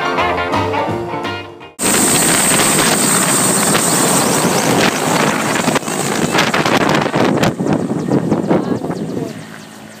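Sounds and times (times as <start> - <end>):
helicopter engine and rotor: 1.8 - 10.0
high turbine whine: 1.8 - 10.0
wind buffeting microphone: 1.8 - 10.0.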